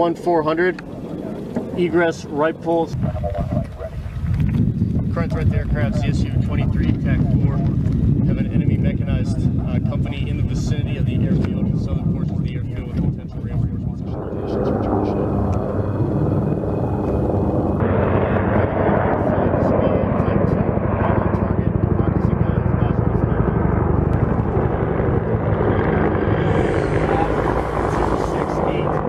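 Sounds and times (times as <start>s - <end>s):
helicopter rotor chopping: 0.0s - 29.0s.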